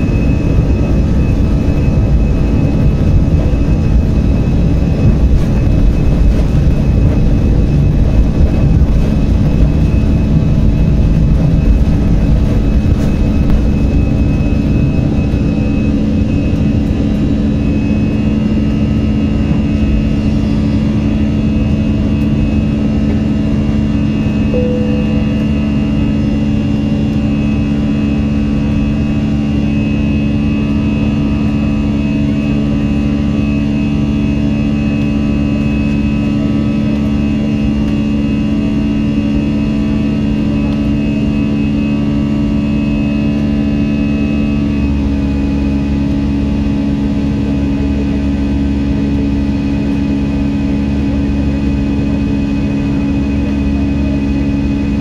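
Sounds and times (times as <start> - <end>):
jet engines droning: 0.0 - 55.0.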